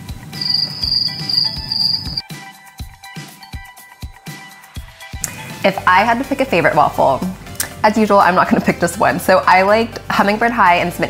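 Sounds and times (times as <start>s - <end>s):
crickets chirping: 0.4s - 2.2s.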